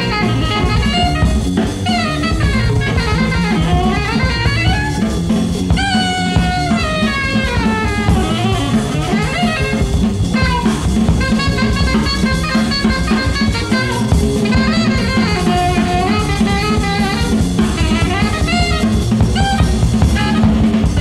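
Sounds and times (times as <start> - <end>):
drum kit: 0.0 - 21.0
low bass line: 0.0 - 21.0
saxophone melody: 0.0 - 21.0.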